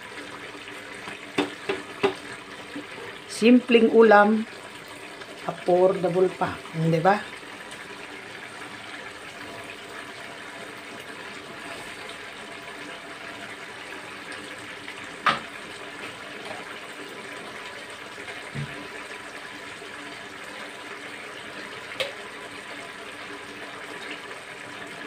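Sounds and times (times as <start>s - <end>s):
sauce bubbling in a pan: 0.0s - 25.0s.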